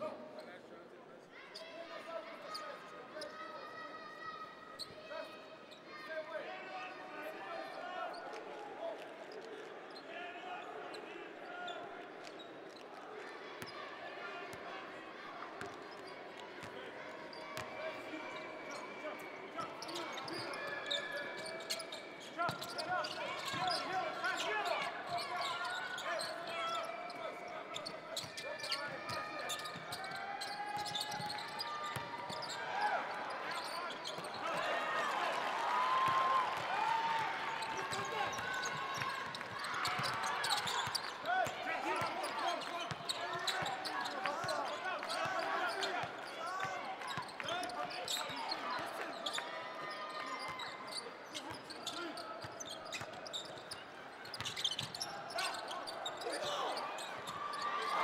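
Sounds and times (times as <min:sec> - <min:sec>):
sneaker squeaks: 0:04.7 - 0:05.9, 0:15.6 - 0:34.7, 0:37.5 - 0:58.0.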